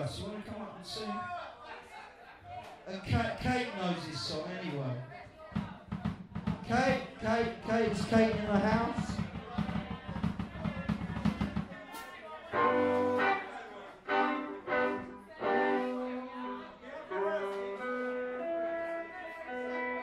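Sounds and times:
drum and bass groove: 5.9 - 11.7.

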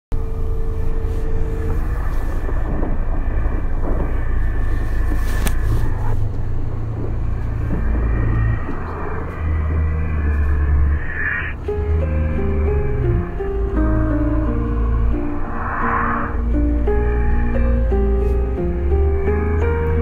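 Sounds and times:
road vehicle rumble with hiss: 0.2 - 20.0.

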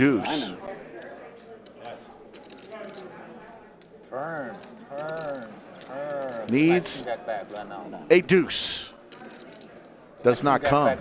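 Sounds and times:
faint background talk: 0.0 - 11.0.

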